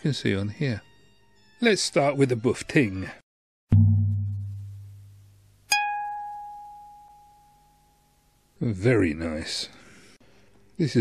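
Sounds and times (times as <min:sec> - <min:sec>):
low struck tone: 0:03.7 - 0:07.6.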